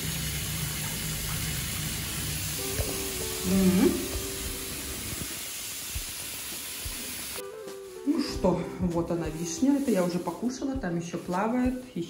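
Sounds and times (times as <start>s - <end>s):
tap water pouring into bathtub: 0.0s - 7.4s.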